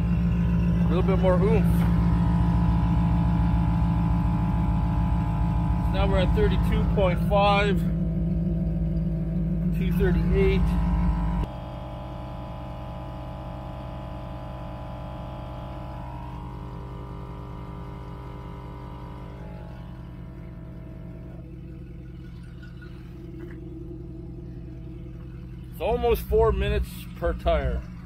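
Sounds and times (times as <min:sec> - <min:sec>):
air compressor running: 0:00.0 - 0:28.0.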